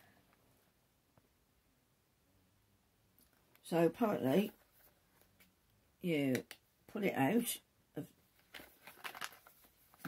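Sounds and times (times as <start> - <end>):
cardboard box rustling: 8.5 - 10.0.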